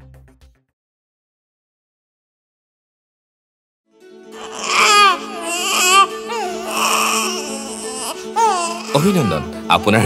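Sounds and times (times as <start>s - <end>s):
background music with held notes: 3.9s - 10.0s
baby crying: 4.3s - 9.6s.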